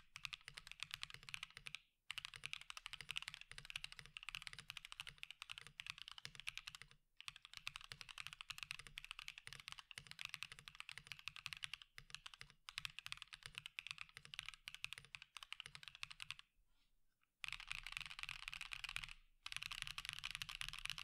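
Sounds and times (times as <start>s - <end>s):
fast mechanical keyboard typing: 0.2s - 16.4s, 17.4s - 21.0s.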